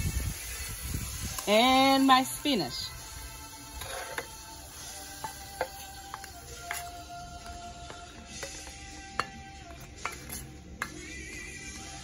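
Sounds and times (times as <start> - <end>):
faint background music: 0.0 - 12.0
plastic spatula scraping a pan: 3.7 - 4.4.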